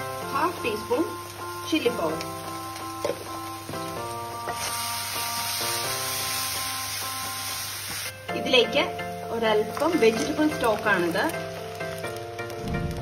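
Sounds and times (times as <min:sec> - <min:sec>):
food sizzling in a pan: 0:00.0 - 0:13.0.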